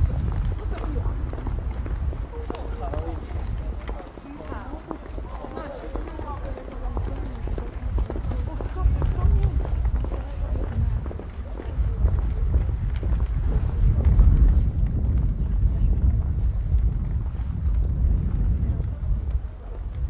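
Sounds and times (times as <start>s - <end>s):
footsteps on pavement: 0.0s - 20.0s
passers-by talking indistinctly: 0.0s - 20.0s
wind buffeting microphone: 0.0s - 20.0s.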